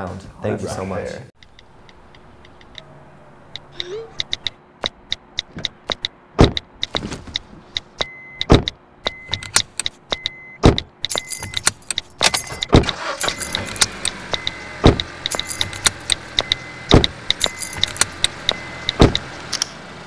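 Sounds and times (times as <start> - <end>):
deep thump: 6.4 - 6.6, 8.5 - 8.7
clicks and rattles: 15.0 - 18.4.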